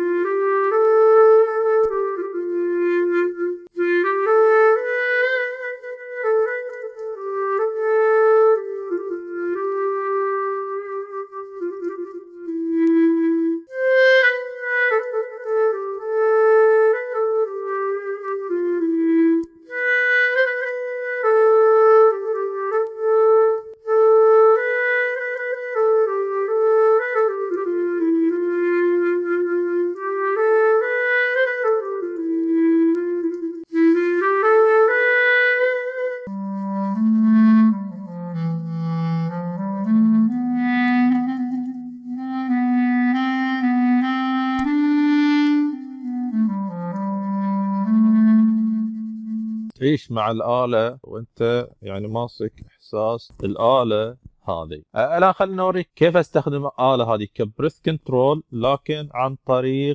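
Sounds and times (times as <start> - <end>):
solo clarinet melody: 0.0 - 50.8.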